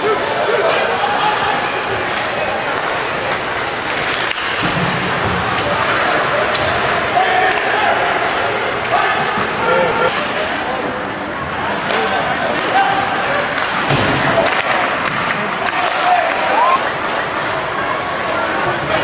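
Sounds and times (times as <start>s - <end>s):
crowd voices and calls: 0.0s - 19.0s.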